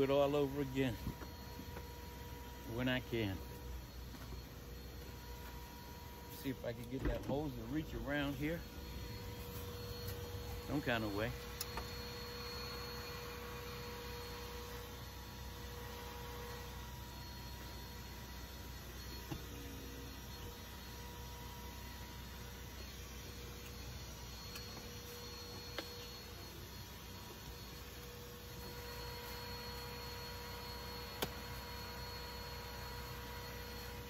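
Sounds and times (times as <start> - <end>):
faint high tones: 0.0 - 14.8
steady low hum: 0.0 - 34.0.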